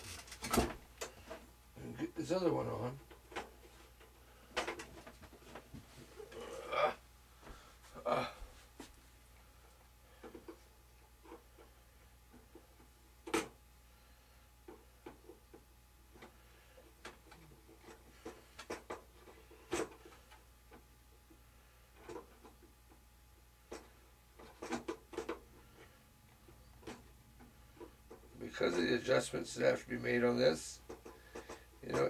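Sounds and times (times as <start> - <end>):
low steady hum: 0.0 - 32.0.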